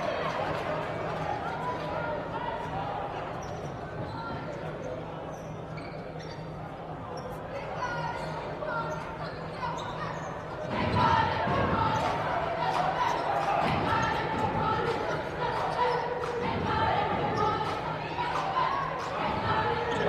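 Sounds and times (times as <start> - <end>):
faint voices in hall: 0.0 - 20.0.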